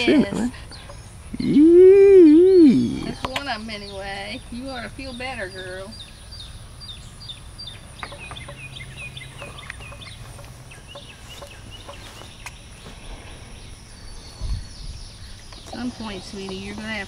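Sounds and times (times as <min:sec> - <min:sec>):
birds chirping: 0:00.0 - 0:17.0
low steady hum: 0:00.0 - 0:17.0.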